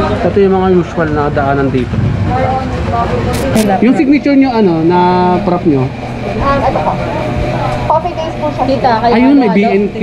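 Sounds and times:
indistinct talking: 0:00.0 - 0:10.0
steady low hum: 0:00.0 - 0:10.0.

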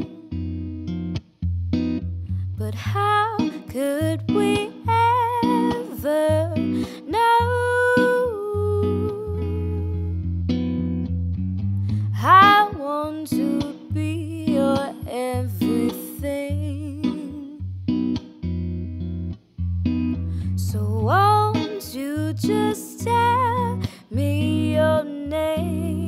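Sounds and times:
jazz electric guitar: 0:00.0 - 0:26.0.

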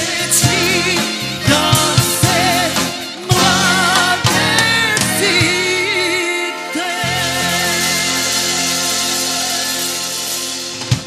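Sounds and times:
accordion sustained chord: 0:02.0 - 0:11.0.

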